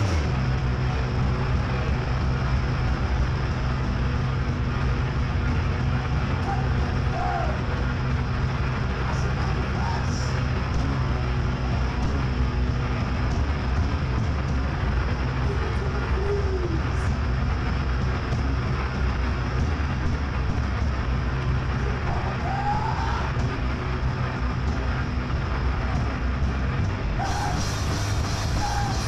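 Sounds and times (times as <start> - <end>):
amplifier hum and rumble: 0.0 - 29.0.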